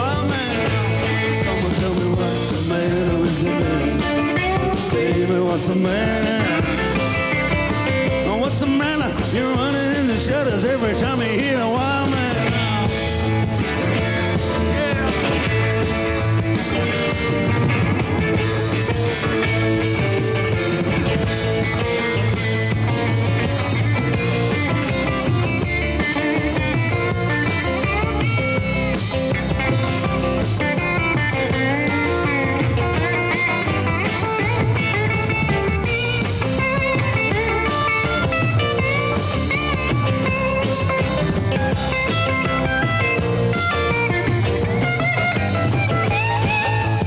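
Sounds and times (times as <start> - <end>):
bass guitar: 0.0 - 47.0
drums: 0.0 - 47.0
electric guitar solo with bent notes: 0.0 - 47.0.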